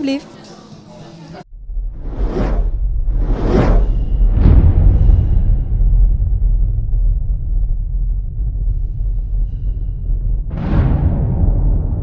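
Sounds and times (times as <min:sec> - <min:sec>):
deep rumble: 0:01.5 - 0:12.0
whooshes: 0:01.6 - 0:12.0.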